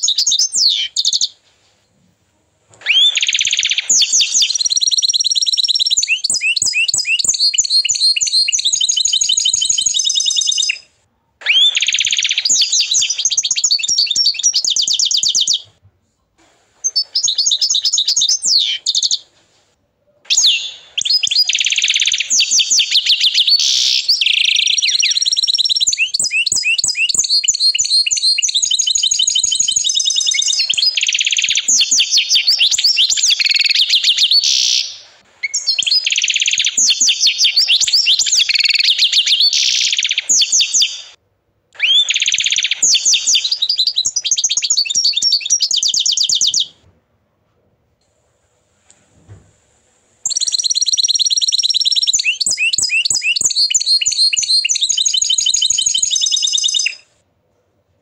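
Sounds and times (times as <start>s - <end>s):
canary singing trills: 0.0s - 1.4s, 2.8s - 15.7s, 16.8s - 19.3s, 20.3s - 41.2s, 41.8s - 46.8s, 50.2s - 57.1s.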